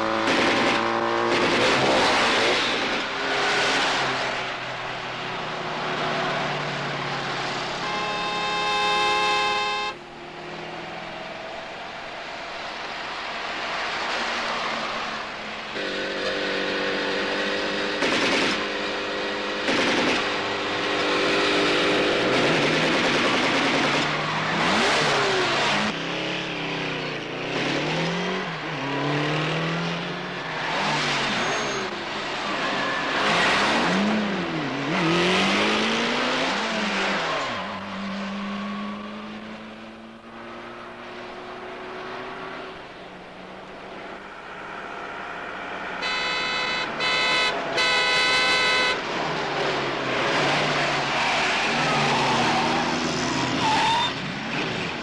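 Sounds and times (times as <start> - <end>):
motorcycle engines revving: 0.0 - 11.4, 15.3 - 55.0
car engines: 0.0 - 55.0
sharp bangs: 19.6 - 20.5.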